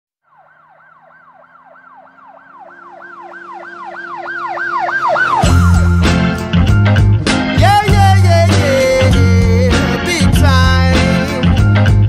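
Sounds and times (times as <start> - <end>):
yelping siren-like synth sweep: 0.2 - 6.9
held low notes: 2.3 - 9.7
band with bass and drums: 5.4 - 12.0.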